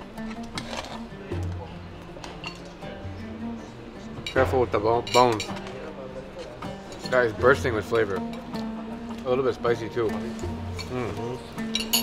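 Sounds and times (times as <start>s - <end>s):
background music with low bass: 0.0s - 12.0s
fork clinking on plate: 11.8s - 12.0s.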